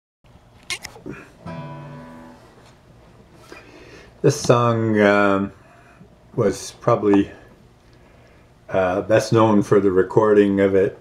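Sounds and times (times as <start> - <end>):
guitar strum: 1.1 - 2.7.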